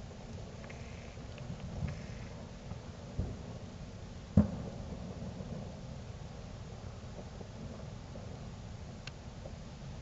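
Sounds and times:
low background rumble: 0.0s - 10.0s
distant sharp bang: 4.4s - 4.8s.

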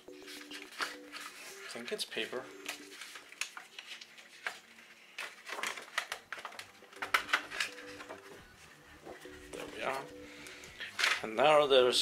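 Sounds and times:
paper sheet crinkling: 0.1s - 8.8s.

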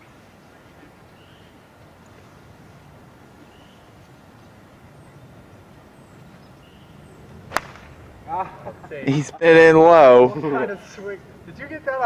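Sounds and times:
club striking golf ball: 7.5s - 8.0s
golf club swish: 7.5s - 8.0s.

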